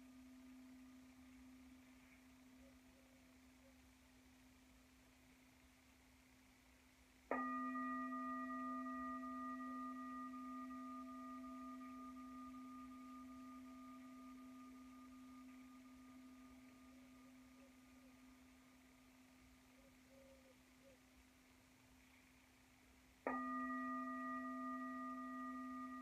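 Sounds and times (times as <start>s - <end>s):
meditation bell ringing: 7.3s - 19.0s, 23.2s - 26.0s.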